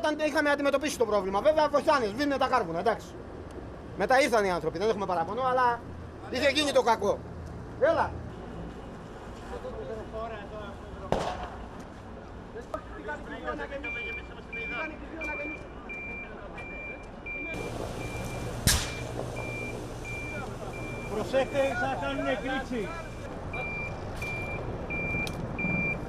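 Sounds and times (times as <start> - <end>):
loud sharp bang: 11.1 - 11.6, 18.6 - 19.3
reversing alarm beeping: 13.8 - 26.0
low rumble and hiss: 17.2 - 26.0.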